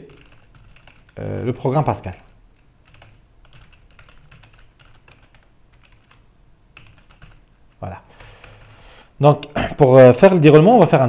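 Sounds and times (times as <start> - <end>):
typing on computer keyboard: 0.0 - 8.8.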